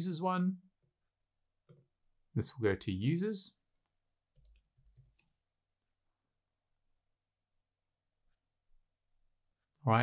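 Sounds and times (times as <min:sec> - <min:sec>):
faint keyboard typing: 0:03.8 - 0:05.5.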